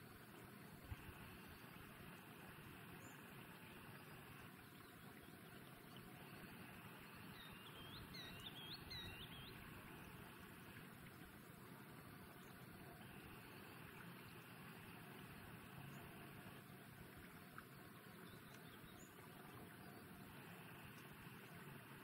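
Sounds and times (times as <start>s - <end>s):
faint steady hiss: 0.0s - 22.0s
high whistled bird calls: 7.3s - 9.6s.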